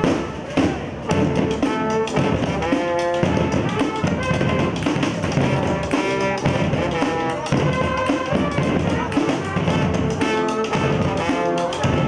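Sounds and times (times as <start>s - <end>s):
brass band playing chords: 0.0s - 12.0s
samba-style drums: 0.0s - 12.0s.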